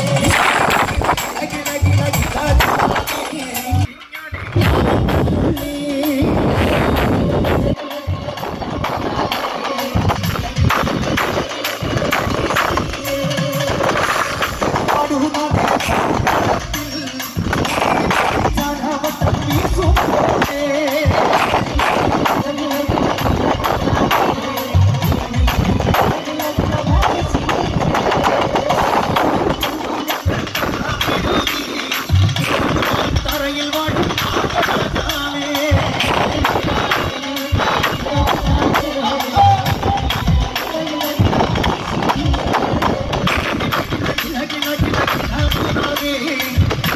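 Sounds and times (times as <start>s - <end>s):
drum-led folk music over speakers: 0.0s - 46.9s.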